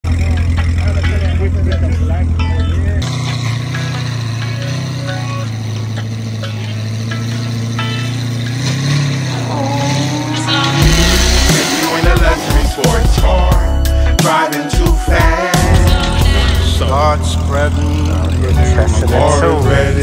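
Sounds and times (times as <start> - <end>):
car engine idling: 0.0 - 20.0
people talking: 0.1 - 3.0, 9.5 - 13.5, 15.2 - 20.0.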